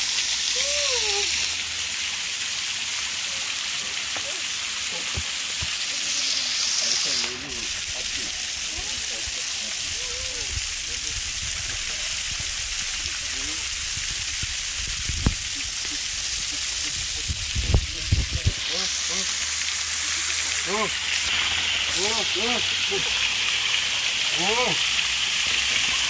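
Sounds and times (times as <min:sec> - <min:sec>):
water spraying and splashing: 0:00.0 - 0:26.0
faint voices: 0:03.2 - 0:13.7.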